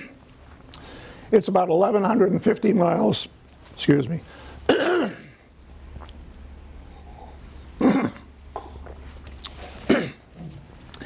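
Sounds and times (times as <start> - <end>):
man clearing his throat: 4.7 - 5.4, 7.8 - 8.8, 9.8 - 10.3.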